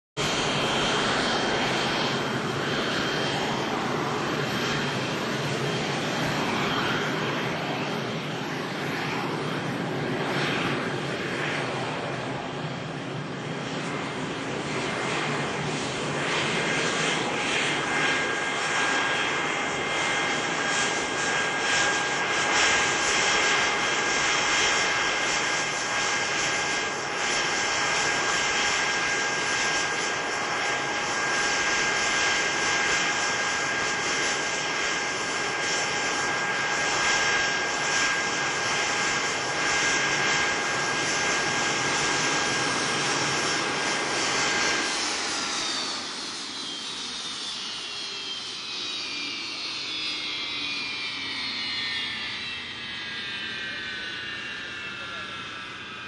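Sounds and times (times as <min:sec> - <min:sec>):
jet engines whining at taxi power: 0:00.2 - 0:56.0.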